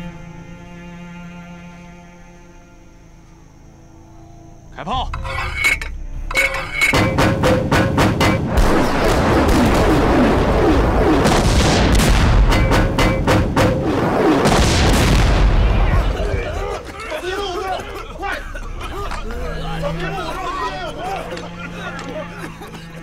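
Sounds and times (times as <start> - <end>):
shell bursts: 6.9 - 16.0
cannon shots: 7.0 - 16.6.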